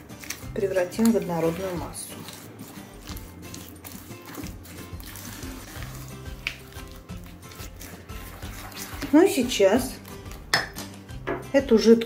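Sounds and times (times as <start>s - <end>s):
spatula squishing batter in bowl: 0.0s - 11.2s
background music with low notes: 0.0s - 12.0s.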